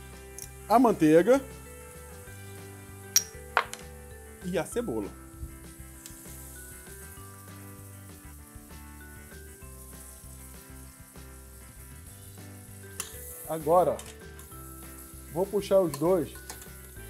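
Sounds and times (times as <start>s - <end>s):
liver and onion sizzling in a pan: 0.0s - 17.0s.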